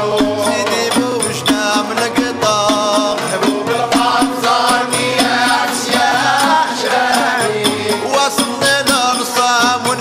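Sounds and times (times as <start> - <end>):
steady percussion beat: 0.0 - 10.0.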